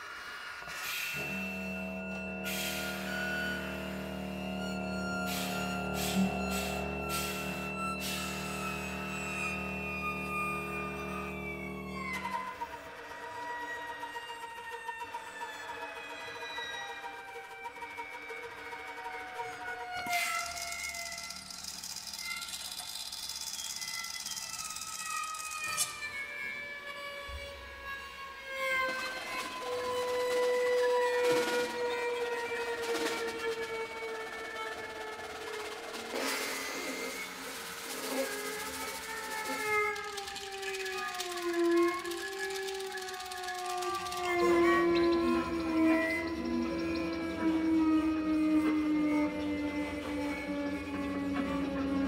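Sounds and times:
chamber ensemble high held tones: 1.0s - 12.8s, 29.4s - 52.0s
chamber ensemble music: 1.2s - 12.7s.

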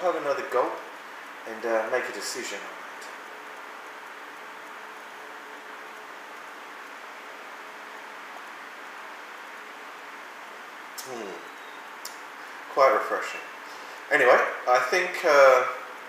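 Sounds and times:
background hiss: 0.0s - 16.0s
faint low hum: 0.0s - 16.0s.

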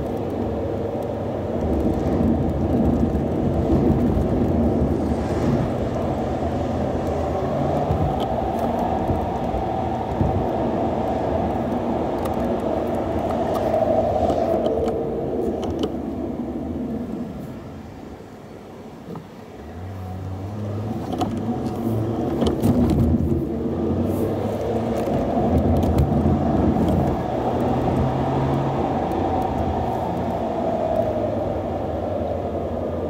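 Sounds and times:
car road and engine noise: 0.0s - 33.0s.

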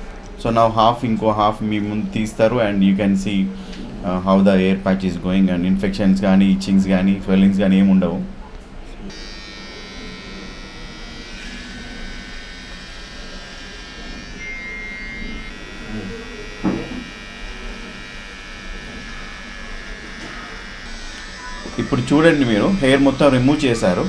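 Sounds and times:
electric hair trimmer running: 9.1s - 24.0s.

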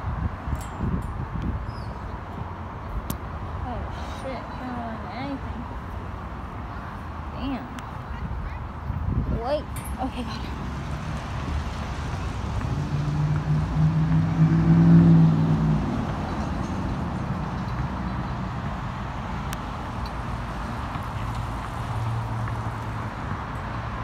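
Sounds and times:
vehicle engine passing: 10.4s - 23.5s.

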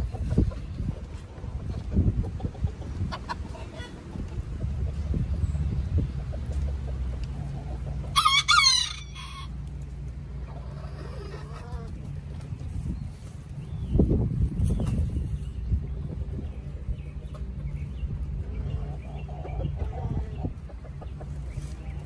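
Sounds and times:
chickens calling: 0.0s - 22.0s.

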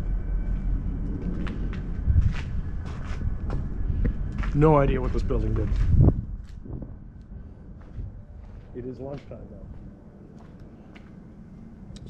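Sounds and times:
steady low rumble: 0.0s - 12.0s
footsteps on gravelly dirt: 0.5s - 7.0s, 7.8s - 11.1s.

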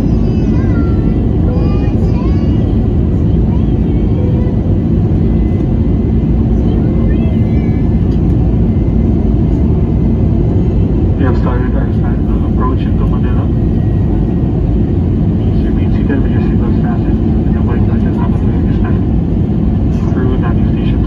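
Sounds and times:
jet engine and rushing air: 0.0s - 21.0s
muffled voices: 0.0s - 21.0s.

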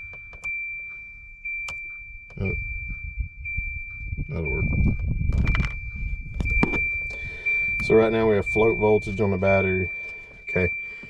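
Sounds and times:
low rumble: 0.0s - 10.5s
high-pitched electronic tone: 0.0s - 11.0s.

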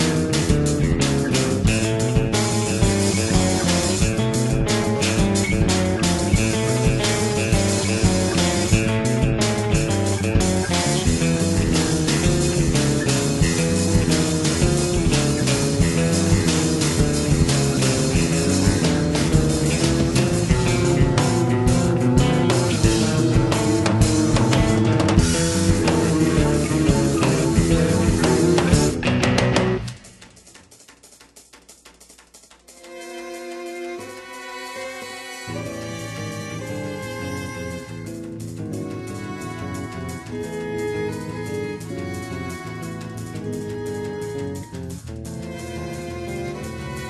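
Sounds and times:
loud full band: 0.0s - 30.1s
electric guitar: 0.0s - 30.4s, 33.8s - 47.0s
electric bass: 0.0s - 30.5s, 35.5s - 47.0s
acoustic drums: 0.0s - 34.4s, 35.8s - 47.0s.

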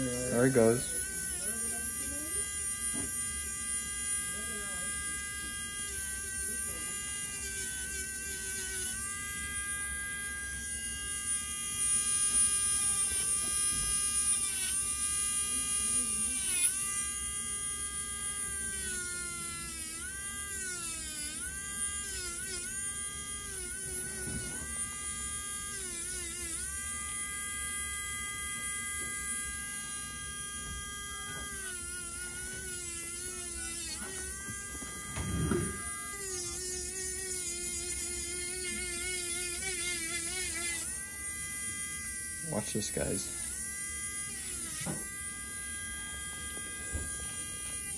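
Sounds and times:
nail drill whining and grinding: 0.0s - 47.9s.

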